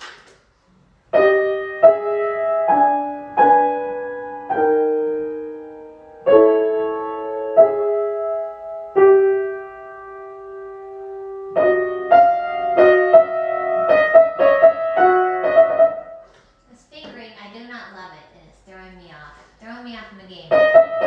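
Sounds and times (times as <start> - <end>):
grand piano playing: 1.2 - 16.3, 20.5 - 21.0.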